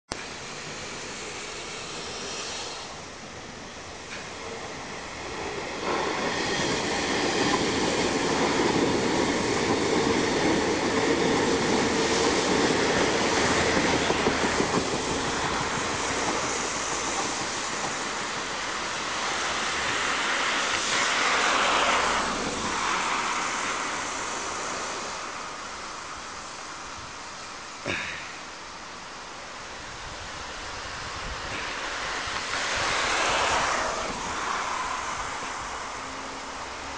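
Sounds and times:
electric train passing: 0:00.2 - 0:27.8, 0:28.4 - 0:36.9.

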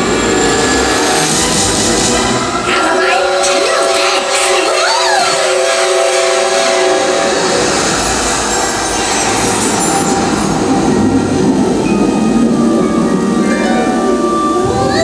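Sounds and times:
rushing rumbling noise: 0:00.0 - 0:15.0.

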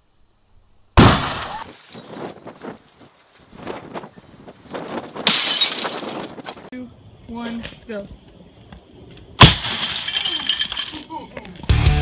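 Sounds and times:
glass shattering: 0:05.2 - 0:06.4, 0:09.4 - 0:11.2
glass pieces clattering: 0:05.3 - 0:06.4, 0:09.7 - 0:11.2.

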